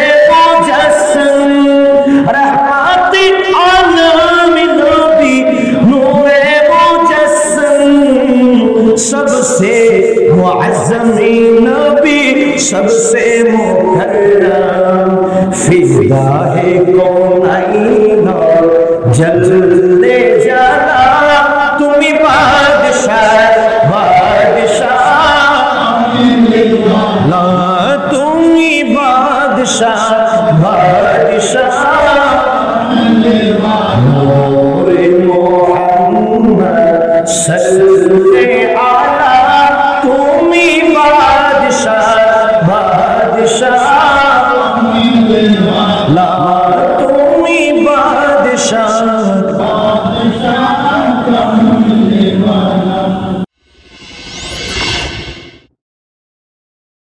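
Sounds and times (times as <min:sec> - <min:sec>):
man singing devotional song: 0:00.0 - 0:53.5
high sweeping shimmer: 0:53.6 - 0:55.7
whoosh rush of noise: 0:53.6 - 0:55.7.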